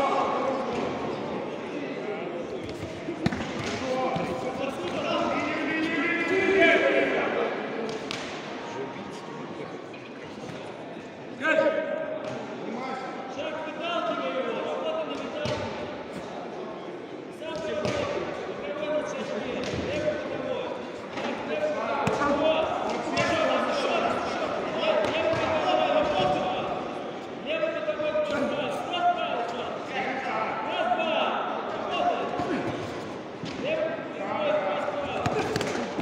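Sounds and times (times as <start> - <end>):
voices in a hall: 0.0 - 36.0.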